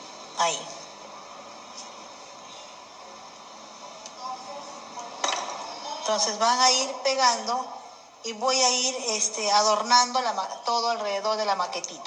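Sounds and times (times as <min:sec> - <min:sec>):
steady background hiss: 0:00.0 - 0:12.0
faint voice: 0:03.8 - 0:06.2.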